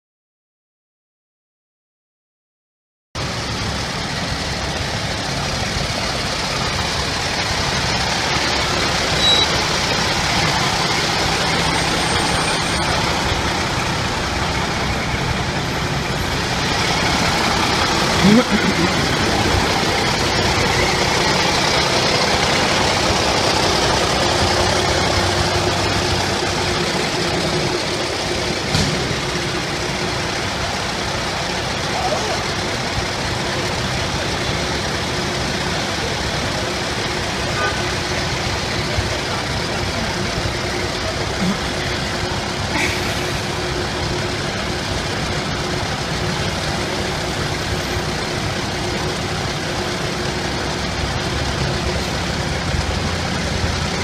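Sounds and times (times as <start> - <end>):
diesel truck engine idling: 3.2 - 54.0
other vehicle engines: 3.2 - 54.0.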